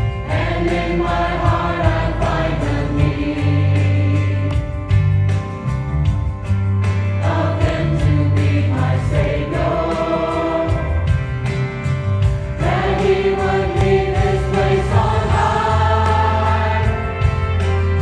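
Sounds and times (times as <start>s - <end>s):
choir singing gospel: 0.0s - 5.1s, 7.0s - 18.0s
accompaniment with bass and beat: 0.0s - 18.0s.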